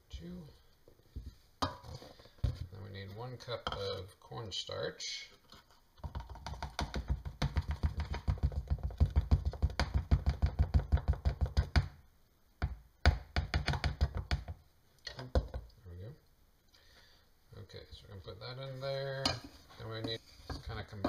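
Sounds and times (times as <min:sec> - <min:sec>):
canister shaken and tapped: 0:06.0 - 0:11.9.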